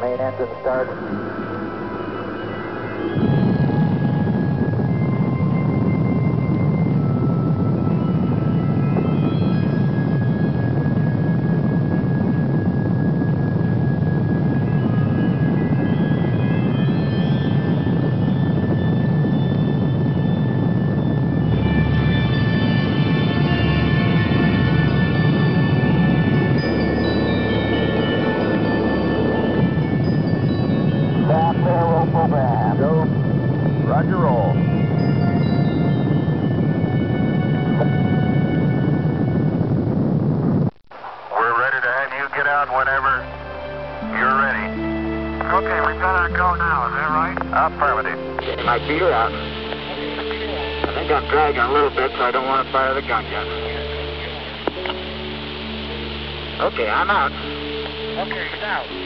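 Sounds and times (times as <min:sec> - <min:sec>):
rocket engine rumbling: 0:38.6 - 0:59.0
synthesizer music with held notes: 0:42.4 - 0:59.0.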